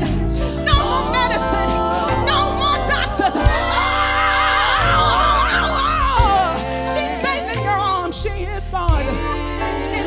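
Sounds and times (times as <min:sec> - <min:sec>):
band accompaniment: 0:00.0 - 0:10.0
woman singing gospel: 0:00.0 - 0:10.0.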